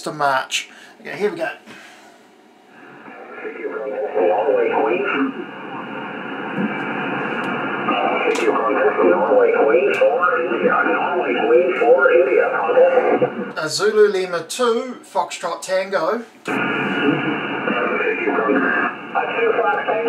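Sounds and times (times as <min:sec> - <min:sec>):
radio voices through speaker: 0:02.8 - 0:13.7, 0:16.5 - 0:20.0.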